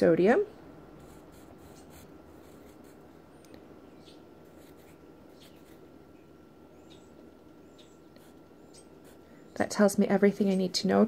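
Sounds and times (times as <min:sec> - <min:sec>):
pencil scratching on paper: 0:01.0 - 0:03.0, 0:04.5 - 0:05.8.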